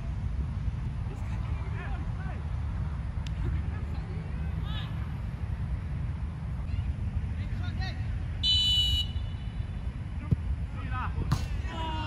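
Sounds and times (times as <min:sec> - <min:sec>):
constant low rumble: 0:00.0 - 0:12.0
referee's whistle blast: 0:08.4 - 0:09.5.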